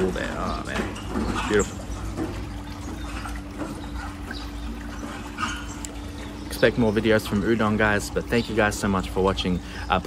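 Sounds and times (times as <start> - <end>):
water trickling faintly: 0.0 - 10.0.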